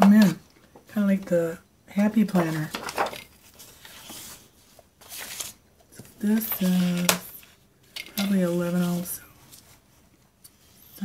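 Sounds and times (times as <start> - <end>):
paper rustling: 2.3 - 10.0.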